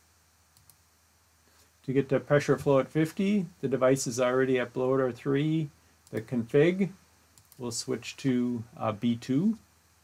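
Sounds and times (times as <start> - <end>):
computer mouse click: 0.6 - 0.8, 7.4 - 7.6
man talking: 1.8 - 7.0, 7.6 - 9.6.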